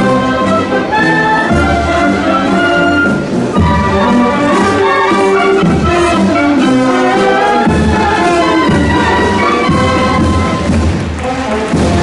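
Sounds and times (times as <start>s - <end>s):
military band marching: 0.0s - 12.0s.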